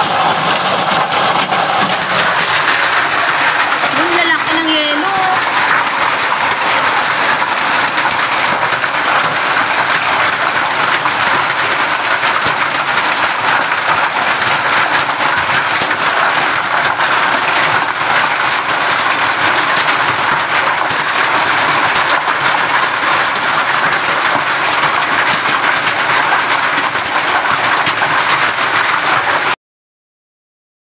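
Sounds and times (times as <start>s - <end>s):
hail and rain on a metal roof: 0.0s - 29.6s.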